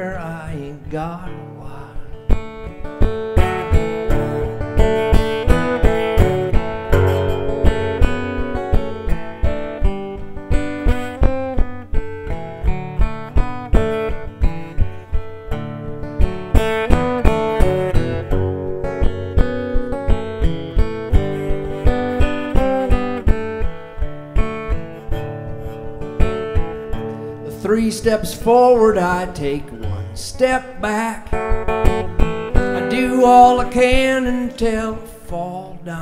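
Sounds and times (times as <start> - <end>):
acoustic guitar playing: 0.0 - 36.0.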